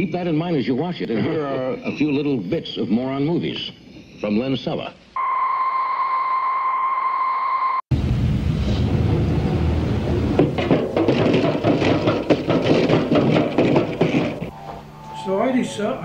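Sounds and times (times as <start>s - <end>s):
electronic test tone: 5.2s - 7.8s, 14.5s - 16.0s
rough noisy soundtrack: 7.9s - 16.0s
knocks and clatters: 10.1s - 14.5s.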